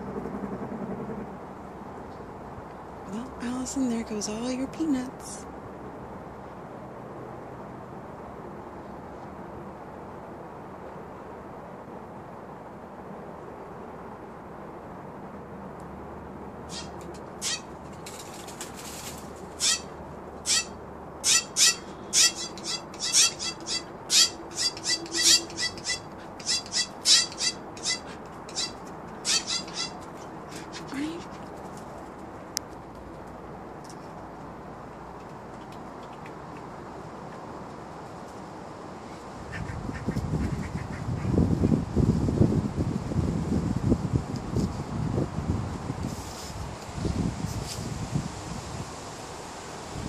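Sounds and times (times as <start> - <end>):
jays calling: 16.7 - 18.3, 19.4 - 31.4
outdoor hiss: 42.0 - 50.0.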